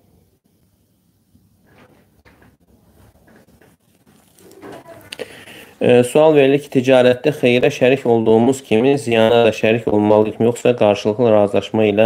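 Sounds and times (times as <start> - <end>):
hands rustling and scratching at desk: 1.6 - 5.8.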